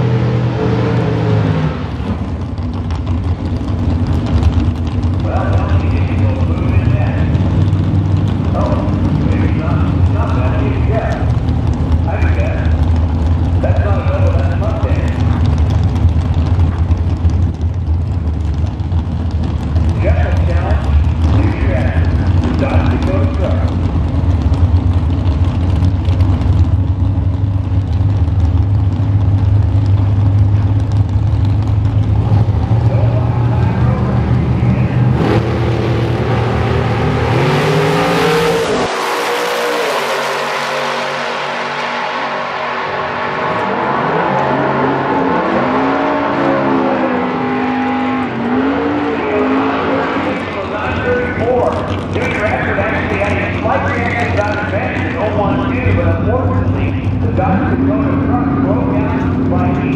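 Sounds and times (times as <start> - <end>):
drag car engine idling and revving: 0.0 - 59.9
car launching down track: 29.3 - 59.9.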